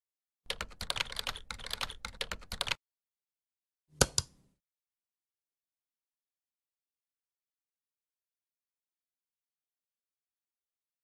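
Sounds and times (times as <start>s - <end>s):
keyboard typing: 0.5s - 2.8s.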